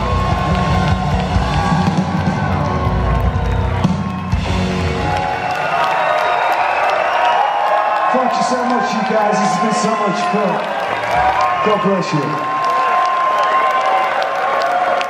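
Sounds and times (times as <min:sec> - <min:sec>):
bass guitar: 0:00.0 - 0:05.4
drums: 0:00.0 - 0:06.5
crowd cheering: 0:00.0 - 0:15.0.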